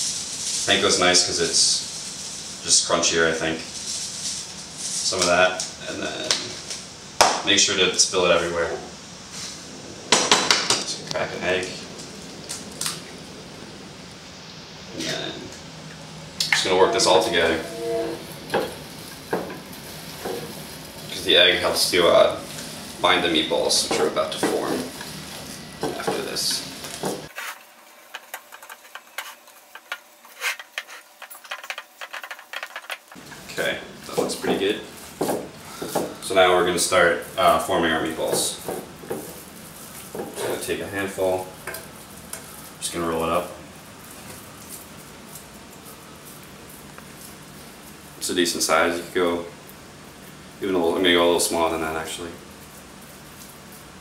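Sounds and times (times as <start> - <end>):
low room hum: 0.2 - 54.0.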